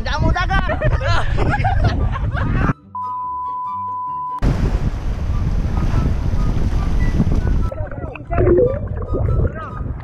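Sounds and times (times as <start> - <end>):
wind buffeting microphone: 0.0 - 2.8, 4.4 - 10.0
surf rushing: 4.4 - 7.7.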